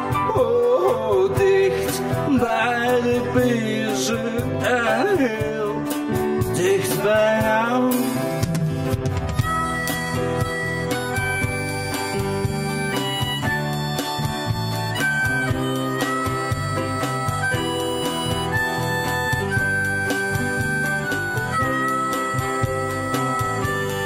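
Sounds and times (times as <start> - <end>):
band accompaniment: 0.0 - 24.0
harmonica melody: 0.0 - 24.0.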